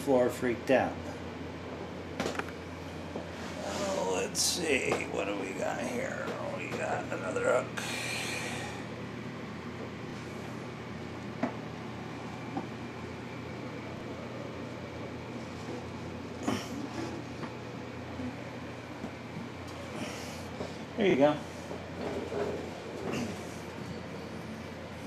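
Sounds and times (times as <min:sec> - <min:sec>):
appliance mechanical hum and hiss: 0:00.0 - 0:25.0.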